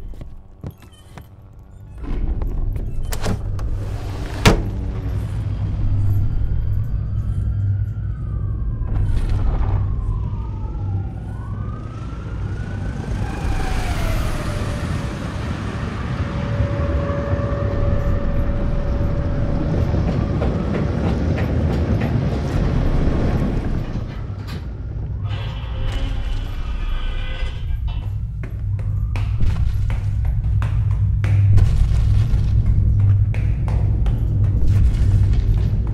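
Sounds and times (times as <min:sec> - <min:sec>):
heavy low rumble: 0:01.5 - 0:35.9
loud low drone: 0:04.4 - 0:20.7
distant siren-like wail: 0:04.6 - 0:31.0
hurried footsteps on stairs: 0:28.0 - 0:35.9.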